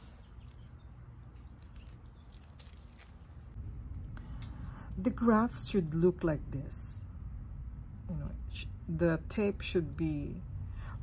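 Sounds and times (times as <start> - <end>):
plastic tape crinkling: 1.4 - 3.5
low steady rumble: 3.1 - 11.0.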